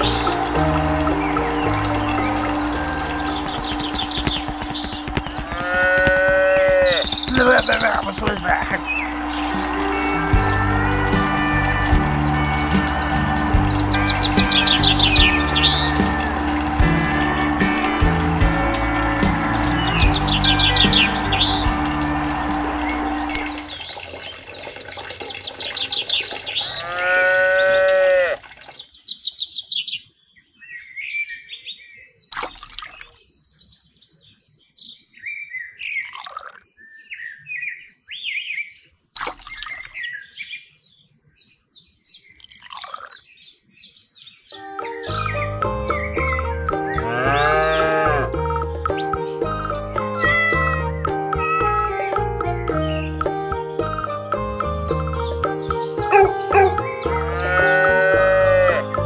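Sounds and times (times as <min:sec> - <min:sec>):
high bird chirps: 0:00.0 - 0:11.1, 0:11.7 - 0:21.9, 0:44.3 - 0:48.1, 0:48.8 - 0:58.7
background music: 0:00.0 - 0:23.8, 0:44.6 - 0:59.0
loud wavering pitched call: 0:00.0 - 0:23.8, 0:50.0 - 0:53.2, 0:55.8 - 0:58.9.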